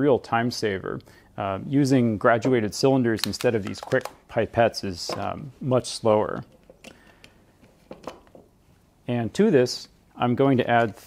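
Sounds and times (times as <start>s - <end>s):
lab bottles clicking and tapping: 6.3s - 8.6s.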